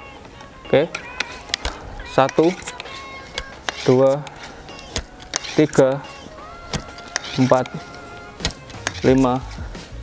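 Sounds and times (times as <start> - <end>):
air rifle metallic clicks: 0.9 - 9.4.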